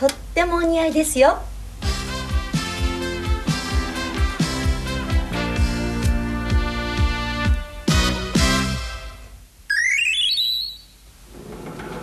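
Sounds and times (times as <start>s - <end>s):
electronic chime jingle: 9.7s - 10.8s.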